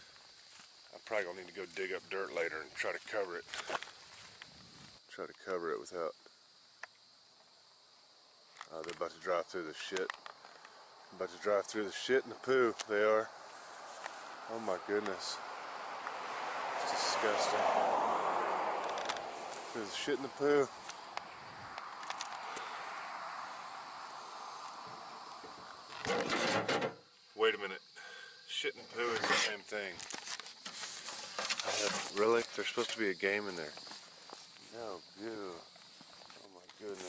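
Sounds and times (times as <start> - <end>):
insects chirping trill: 0.0 - 37.0.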